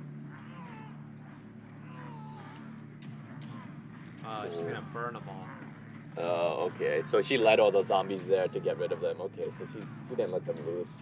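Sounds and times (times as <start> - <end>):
low steady drone: 0.0 - 11.0
thin wavering high cries: 0.2 - 9.8.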